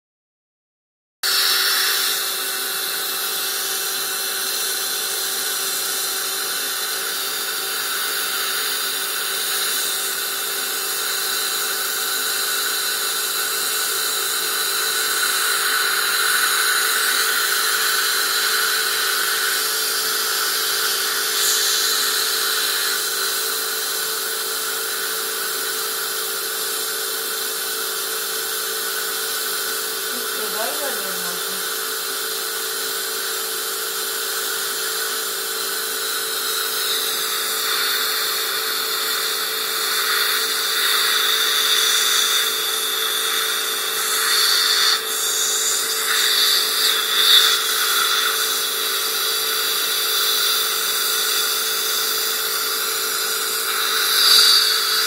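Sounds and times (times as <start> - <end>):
dental suction hiss and hum: 1.2 - 55.0.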